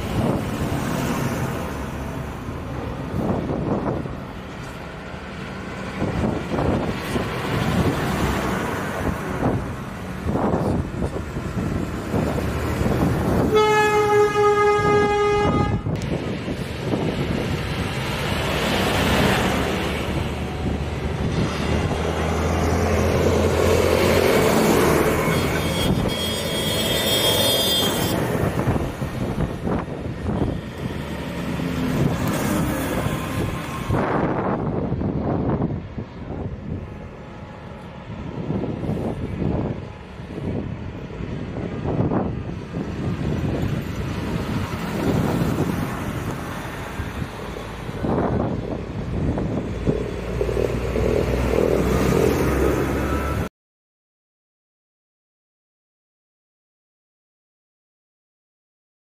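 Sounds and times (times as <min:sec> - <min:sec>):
road traffic noise: 0:00.0 - 0:53.5
tractor engines driving past: 0:00.0 - 0:53.5.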